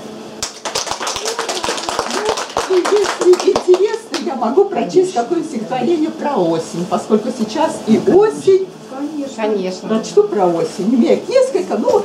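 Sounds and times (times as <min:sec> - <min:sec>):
audience applauding: 0:00.4 - 0:04.4.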